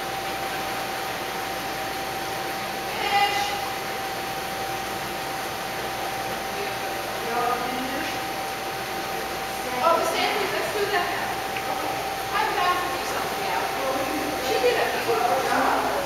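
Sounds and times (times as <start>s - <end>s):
distant voices: 0.0s - 16.0s
room hum: 0.0s - 16.0s.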